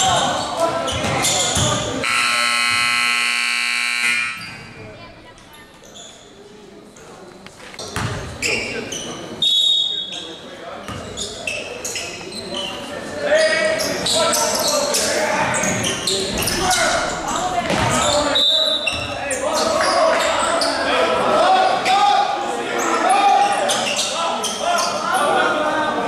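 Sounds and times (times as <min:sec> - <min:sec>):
voices echoing in a hall: 0:00.0 - 0:26.0
scoreboard horn buzzing: 0:02.0 - 0:04.5
ball bouncing: 0:17.6 - 0:18.1.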